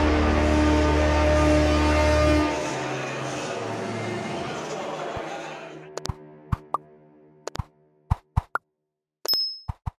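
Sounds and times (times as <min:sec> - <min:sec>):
bright ding with ringing tone: 0:09.3 - 0:09.7.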